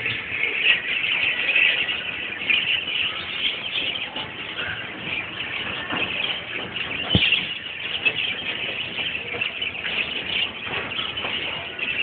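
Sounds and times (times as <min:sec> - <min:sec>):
caged birds chirping: 0:00.0 - 0:12.0.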